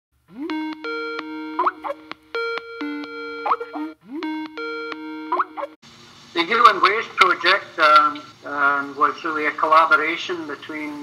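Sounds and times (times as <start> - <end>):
call ringtone melody: 0.3 - 5.8.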